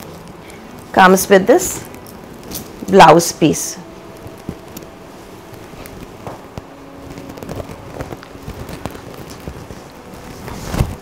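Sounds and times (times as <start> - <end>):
silk fabric rustling: 3.9 - 11.0.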